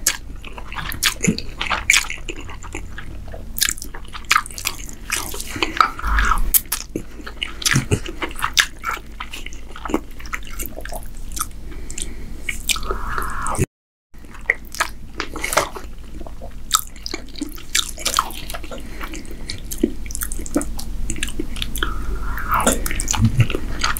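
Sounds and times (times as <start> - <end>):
wet chewing: 0.0 - 12.7, 14.7 - 21.8.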